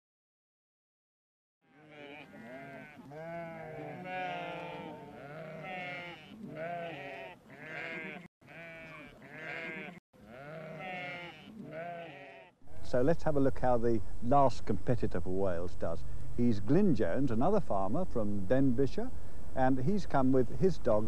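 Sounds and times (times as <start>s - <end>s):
sheep bleating: 1.6s - 13.0s.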